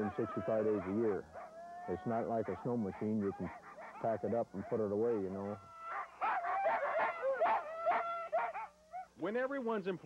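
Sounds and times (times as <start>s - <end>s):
dogs yelping and howling: 0.0s - 9.2s.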